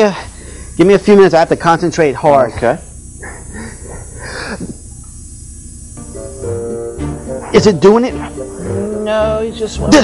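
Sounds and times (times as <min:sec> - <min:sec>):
steady low hum: 0:00.0 - 0:10.0
person murmuring: 0:07.4 - 0:10.0.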